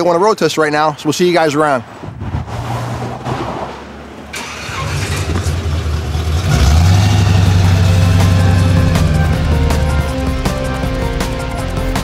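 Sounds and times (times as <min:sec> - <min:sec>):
car engine running: 0:04.3 - 0:11.7
music playing: 0:07.4 - 0:12.0.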